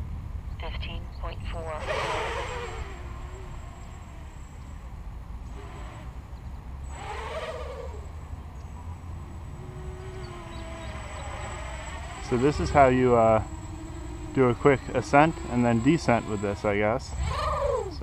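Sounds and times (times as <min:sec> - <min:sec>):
quadcopter motors buzzing: 0:01.5 - 0:18.0.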